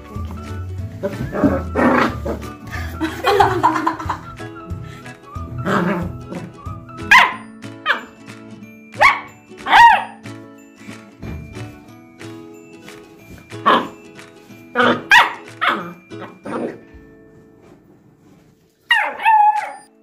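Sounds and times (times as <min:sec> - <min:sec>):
background music: 0:00.0 - 0:20.0
puppy yapping: 0:07.1 - 0:08.1, 0:09.0 - 0:10.2, 0:14.8 - 0:16.8, 0:18.9 - 0:19.9.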